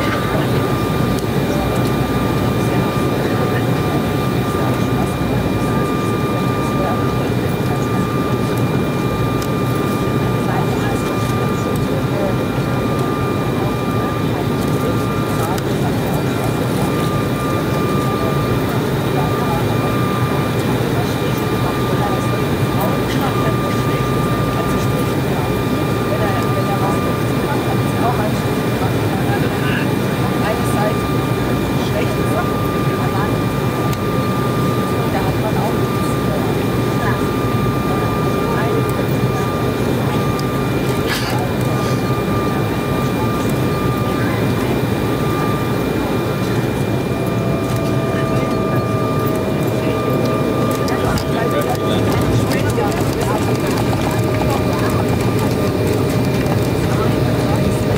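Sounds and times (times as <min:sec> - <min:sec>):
airliner cabin airflow: 0:00.0 - 0:57.9
steady high whining tones: 0:00.0 - 0:57.9
turbofan engines running: 0:00.0 - 0:57.9.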